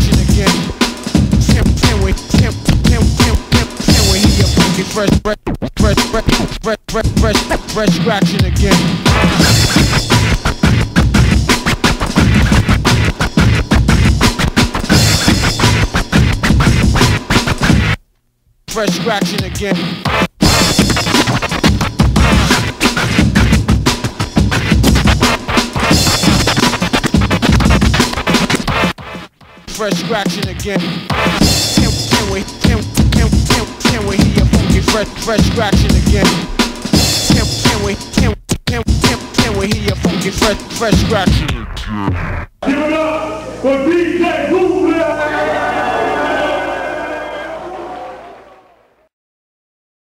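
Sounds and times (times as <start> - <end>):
hip-hop track held tones: 0.0 - 17.9, 18.7 - 45.5
drum beat: 0.0 - 18.0, 18.7 - 42.9
turntable scratches: 0.0 - 18.0, 18.7 - 42.9.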